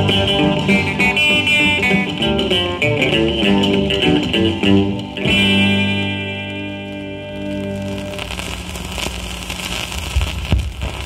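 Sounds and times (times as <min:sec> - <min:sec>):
record hiss and crackle: 0:00.0 - 0:11.0.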